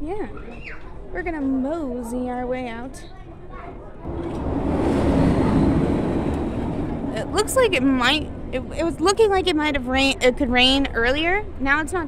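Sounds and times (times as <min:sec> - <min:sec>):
ride vehicle passing overhead: 0:04.0 - 0:12.0.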